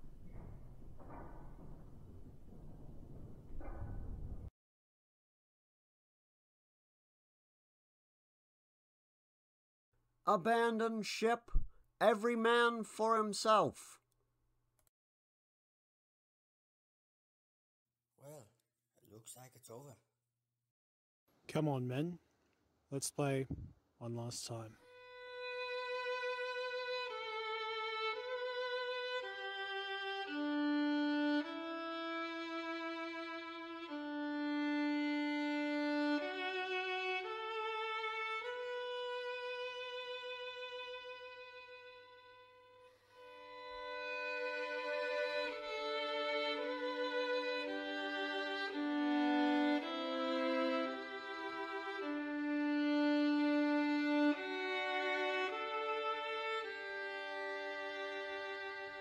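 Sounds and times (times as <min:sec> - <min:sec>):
slow violin melody: 0:24.8 - 0:59.0.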